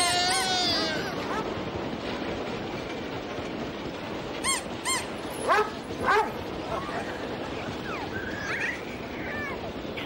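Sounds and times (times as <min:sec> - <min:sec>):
background hubbub: 0:04.4 - 0:10.0
dog barking: 0:05.4 - 0:06.4.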